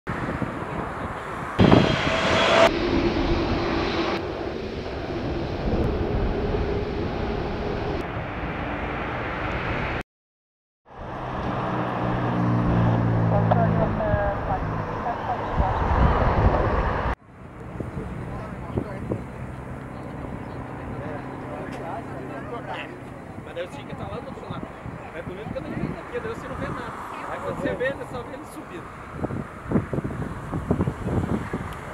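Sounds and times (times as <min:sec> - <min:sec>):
jet engines on approach: 0:00.1 - 0:10.0, 0:10.9 - 0:31.9.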